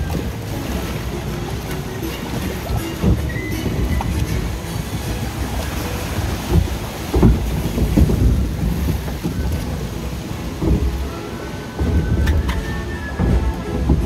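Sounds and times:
microphone rumble: 0:00.0 - 0:14.0
water rushing and splashing: 0:00.0 - 0:14.0.

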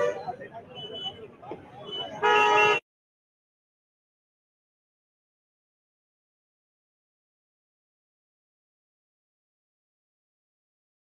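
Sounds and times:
vehicle horn honking: 0:00.0 - 0:01.2, 0:01.8 - 0:02.8
street crowd chatter: 0:00.0 - 0:02.8.

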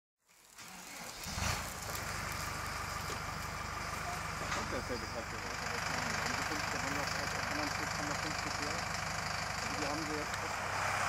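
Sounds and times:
engine idling: 0:00.3 - 0:11.0
engine knock: 0:00.7 - 0:11.0.

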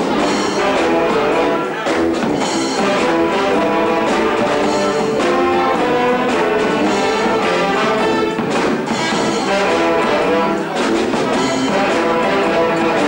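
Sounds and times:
brass band playing: 0:00.0 - 0:13.0.

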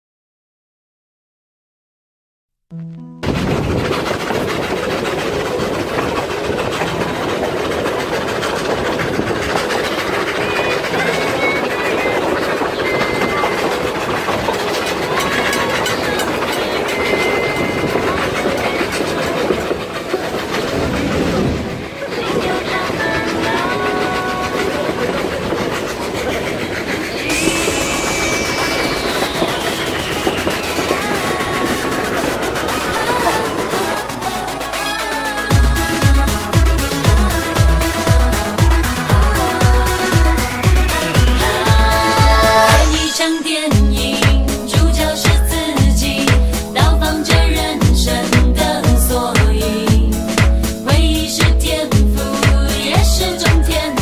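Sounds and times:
train wheels rumbling and clattering: 0:03.2 - 0:54.0.

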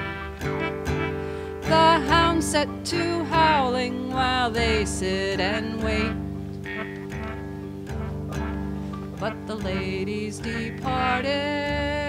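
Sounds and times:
person singing: 0:00.0 - 0:07.4, 0:09.2 - 0:12.0
guitar plucking: 0:00.0 - 0:12.0
steady held tones: 0:00.0 - 0:12.0.

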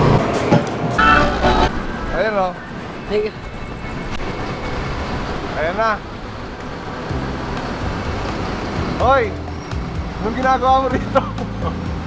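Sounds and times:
street traffic noise: 0:00.0 - 0:12.0
vehicle horn toot: 0:01.0 - 0:01.7.

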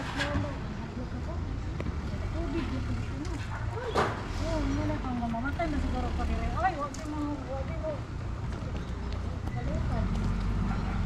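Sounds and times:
people talking in the street: 0:00.0 - 0:11.0.

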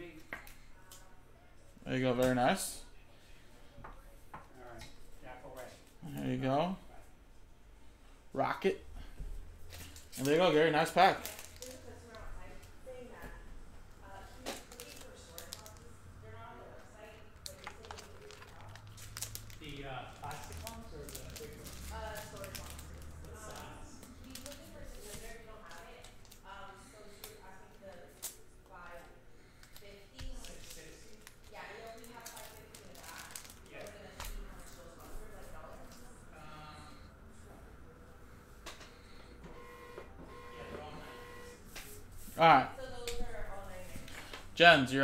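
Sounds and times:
card packs crinkling: 0:09.6 - 0:11.9, 0:14.4 - 0:16.0, 0:17.4 - 0:28.4, 0:29.5 - 0:35.0.

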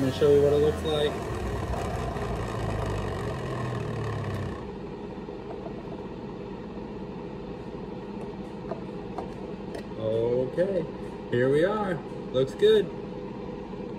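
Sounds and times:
juicer motor humming: 0:00.0 - 0:06.0.

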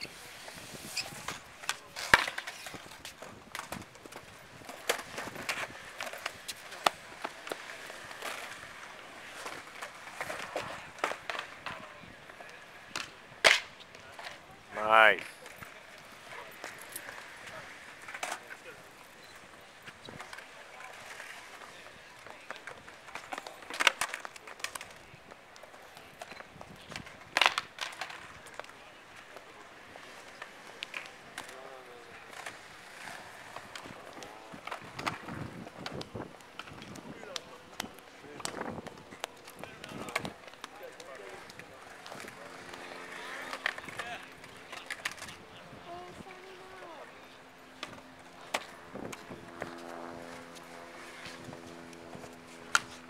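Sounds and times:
skateboard clacking on ground: 0:00.0 - 0:14.5, 0:15.2 - 0:47.2, 0:47.8 - 0:49.8
skateboard wheels rolling on concrete: 0:00.0 - 0:53.0.

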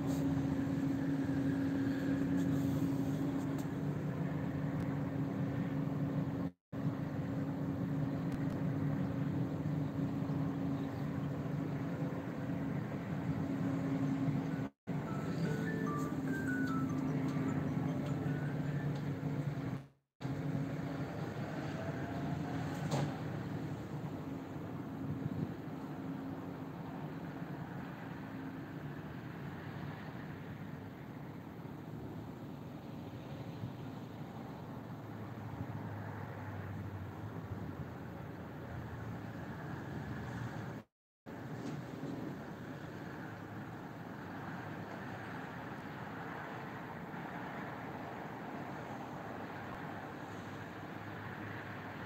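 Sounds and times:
distant city traffic: 0:00.0 - 0:52.0
low urban hum: 0:00.0 - 0:52.0
short tune of high notes: 0:15.0 - 0:19.0.

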